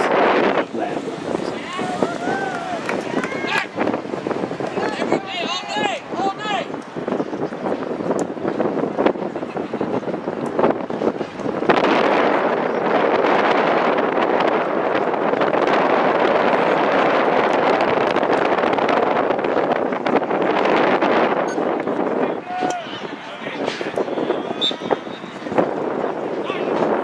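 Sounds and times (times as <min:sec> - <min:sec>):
crowd of spectators: 0:00.0 - 0:27.0.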